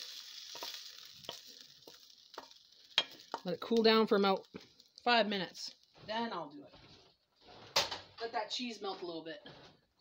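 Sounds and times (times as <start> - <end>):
meat sizzling: 0.0 - 8.0
wooden spoon scraping a pan: 0.0 - 10.0.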